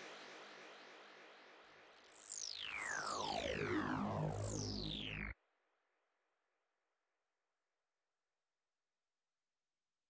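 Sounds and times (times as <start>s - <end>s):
noisy synth tail: 2.6s - 5.3s
synth tones gliding down in pitch: 2.6s - 5.3s.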